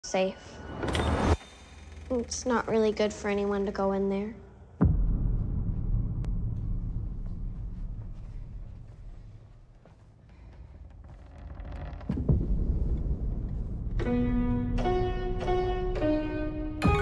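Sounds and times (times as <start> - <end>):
deep rumbling drone: 4.6 - 9.9, 10.6 - 15.2.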